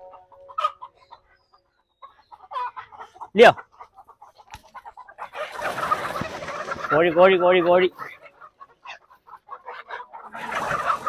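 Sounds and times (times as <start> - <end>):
chickens clucking: 0.0 - 11.0.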